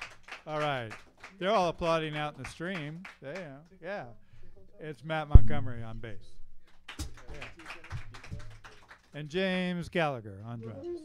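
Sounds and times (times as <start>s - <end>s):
scattered applause: 0.0s - 3.5s, 6.7s - 9.3s
low thuds: 5.4s - 6.6s.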